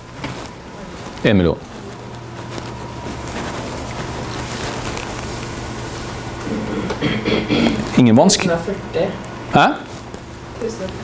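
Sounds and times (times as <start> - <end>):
hiss with low hum: 1.9 - 10.7.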